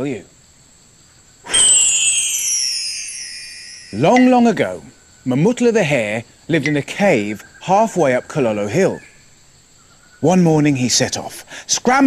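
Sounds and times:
shimmering chime gliding downward: 1.5 - 4.9.

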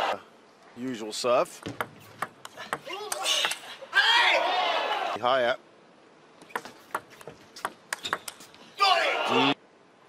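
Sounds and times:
table tennis ball clicking: 6.5 - 8.4.

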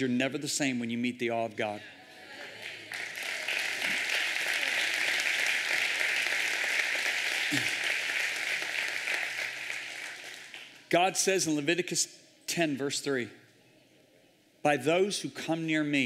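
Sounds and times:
congregation applauding: 2.3 - 10.9.

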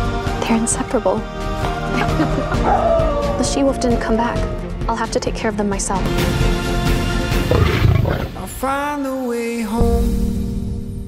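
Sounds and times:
trailer music with held tones: 0.0 - 9.0
lion roaring: 7.4 - 8.6.

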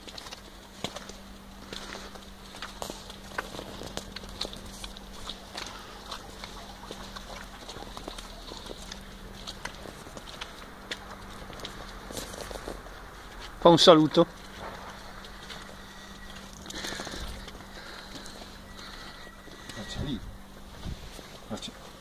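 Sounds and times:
faint steady hum: 0.0 - 22.0
footsteps on snow: 0.0 - 22.0.

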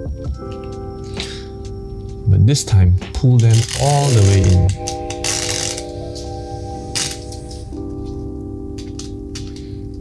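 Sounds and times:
background music of held chords: 0.0 - 10.0.

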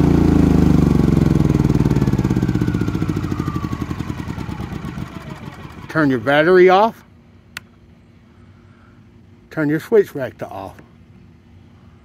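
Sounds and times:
generator engine running down: 0.0 - 7.1.

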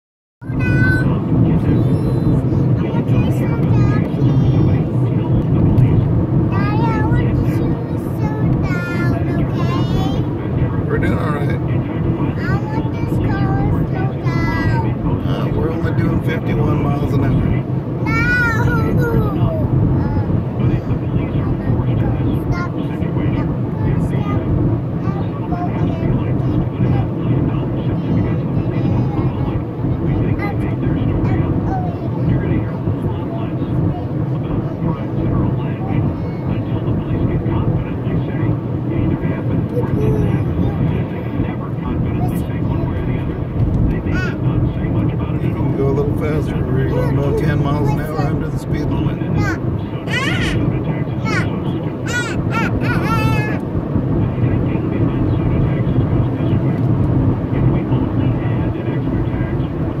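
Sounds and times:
car engine rumble: 0.4 - 60.0
tyres on the road: 0.4 - 60.0.

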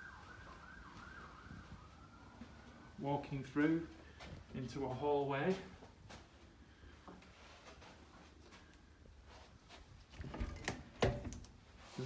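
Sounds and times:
faint siren yelping: 0.0 - 3.0.

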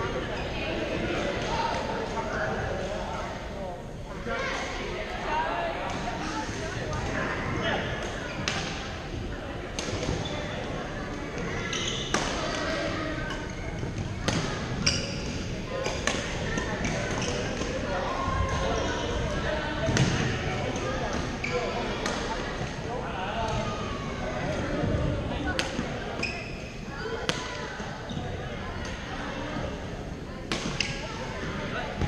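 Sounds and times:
background chatter of players: 0.0 - 32.0.

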